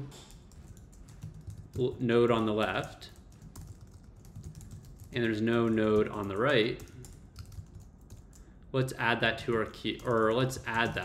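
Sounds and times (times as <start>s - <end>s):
computer keyboard typing: 0.0s - 8.5s, 9.3s - 11.0s
man speaking: 1.8s - 3.2s, 5.2s - 6.9s, 8.7s - 11.0s.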